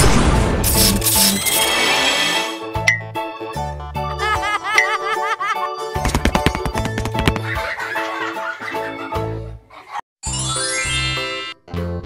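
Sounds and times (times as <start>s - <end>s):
upbeat cartoon music: 0.7s - 12.0s.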